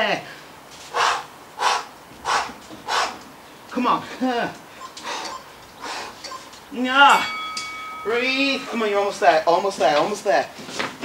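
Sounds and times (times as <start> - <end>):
person exhaling forcefully: 0.9 - 3.2.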